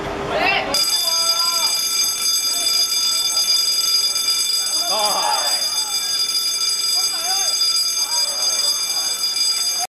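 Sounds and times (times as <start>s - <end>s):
footballers shouting: 0.3s - 1.8s, 4.6s - 6.3s.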